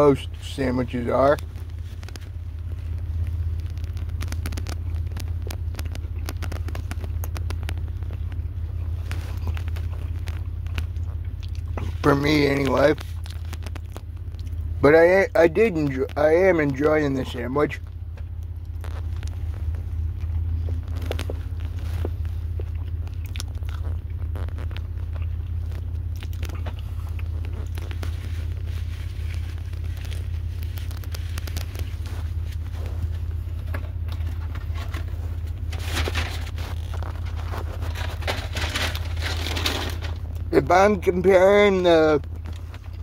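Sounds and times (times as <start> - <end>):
car cabin rumble: 0.0 - 43.0
steady low hum: 0.0 - 43.0
person chewing a sandwich: 1.4 - 14.8, 17.8 - 39.2, 42.2 - 43.0.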